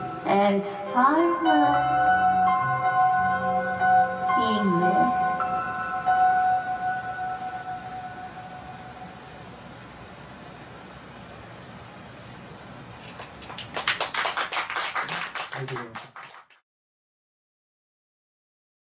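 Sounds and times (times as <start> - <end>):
held synthesizer chord: 0.0 - 10.0
audience clapping: 13.2 - 16.6.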